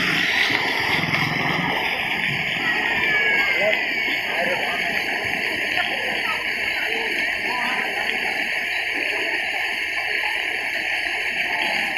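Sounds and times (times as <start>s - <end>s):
fountain water splashing: 0.0s - 11.9s.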